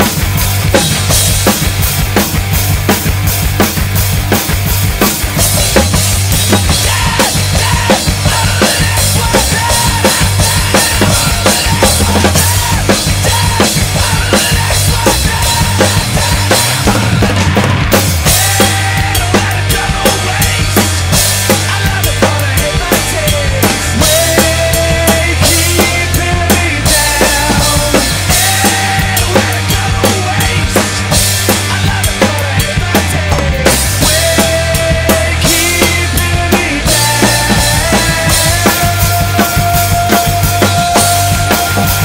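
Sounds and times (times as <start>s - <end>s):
rock backing track with guitars: 0.0s - 42.0s
rock drum beat: 0.0s - 42.0s.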